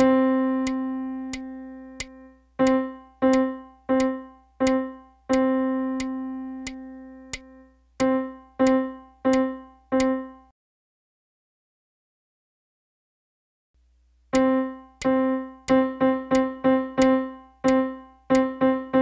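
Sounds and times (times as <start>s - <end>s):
faint beat clicks: 0.0s - 10.2s, 14.3s - 18.6s
piano notes: 0.0s - 10.5s, 14.4s - 19.0s.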